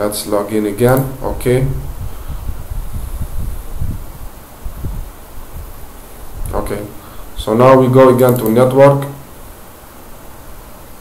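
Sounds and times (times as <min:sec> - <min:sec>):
low rumbling microphone noise: 0:00.0 - 0:11.0.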